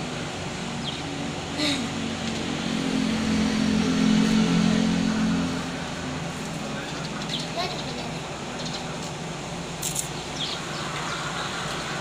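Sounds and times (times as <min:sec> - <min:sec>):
vehicle passing by: 0:00.0 - 0:08.1.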